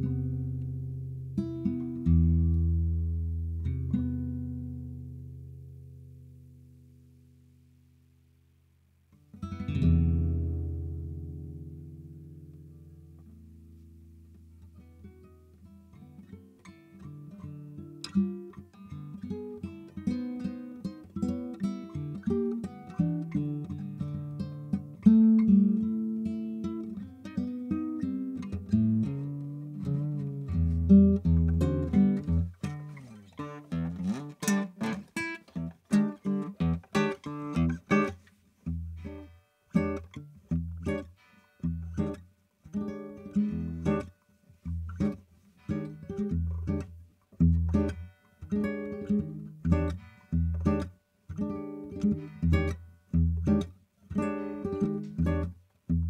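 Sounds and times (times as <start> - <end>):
solo guitar playing: 0.0 - 7.4, 9.1 - 56.0.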